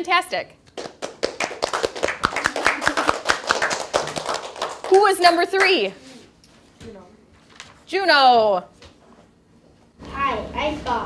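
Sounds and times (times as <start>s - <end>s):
people clapping: 0.7s - 5.9s.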